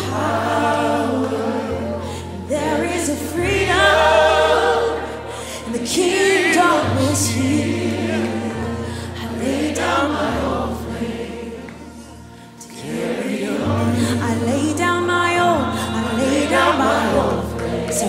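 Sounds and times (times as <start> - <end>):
woman singing with vibrato: 0.0 - 10.0, 13.4 - 18.0
choir singing: 0.0 - 18.0.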